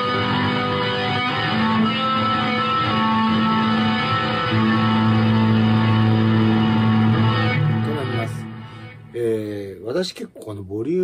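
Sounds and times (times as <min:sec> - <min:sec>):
electric guitar sustained notes: 0:00.0 - 0:09.2.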